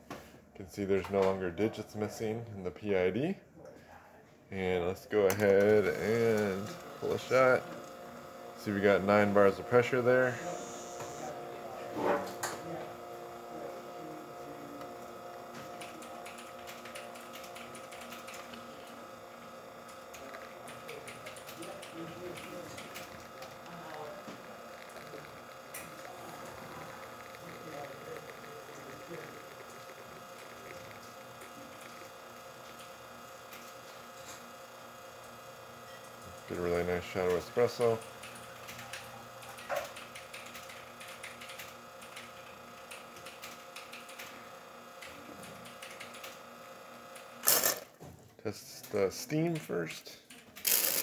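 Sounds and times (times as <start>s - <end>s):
espresso machine pump buzzing: 4.6s - 48.1s, 48.8s - 51.0s.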